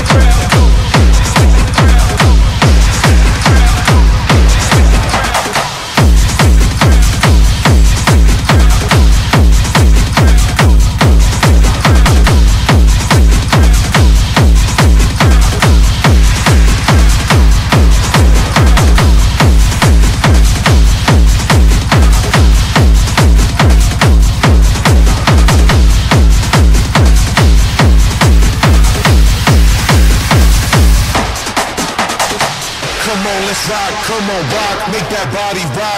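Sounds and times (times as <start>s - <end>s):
heavy kick drum: 0.0s - 35.9s.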